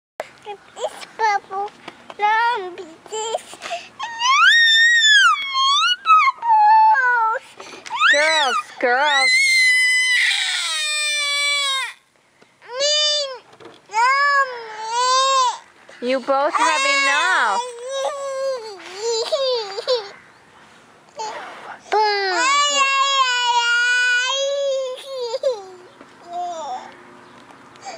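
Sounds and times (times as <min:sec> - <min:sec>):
toddler girl screeching: 0:04.0 - 0:12.0, 0:12.6 - 0:15.6, 0:16.5 - 0:20.1, 0:22.0 - 0:26.9.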